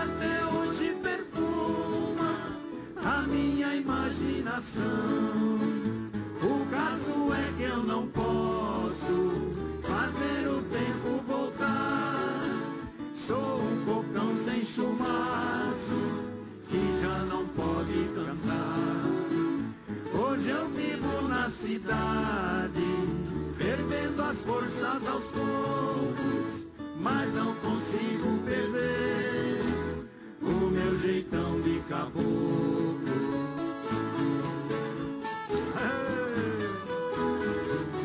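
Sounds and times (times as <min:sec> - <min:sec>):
ensemble of folk guitars strumming: 0:00.0 - 0:38.0.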